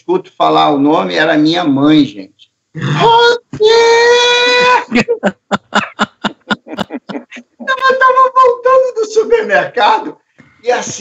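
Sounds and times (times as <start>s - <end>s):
man crying out: 2.8s - 8.1s.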